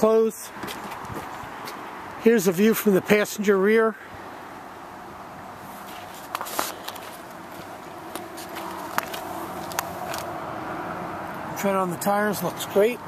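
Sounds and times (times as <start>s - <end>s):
outdoor background noise: 0.0s - 13.0s
footsteps on gravel: 5.7s - 10.3s.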